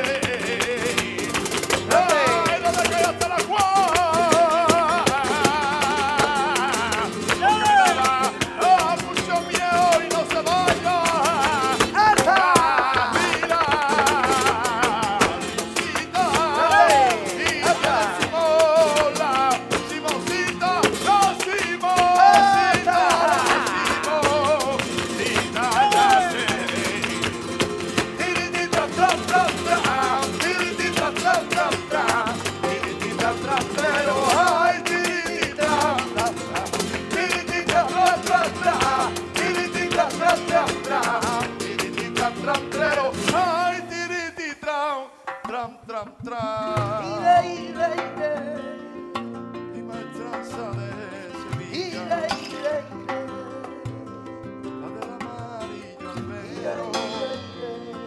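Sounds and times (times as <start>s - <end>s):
hand-clapping: 0.0s - 43.8s
man singing: 0.0s - 49.0s, 49.7s - 58.0s
acoustic guitars: 0.0s - 58.0s
percussion: 0.0s - 58.0s.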